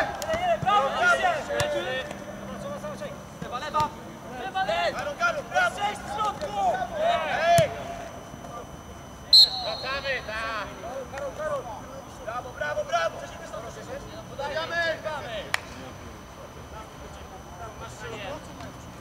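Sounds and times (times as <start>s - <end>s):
players shouting: 0.0s - 2.9s
referee's whistle blast: 9.3s - 10.5s.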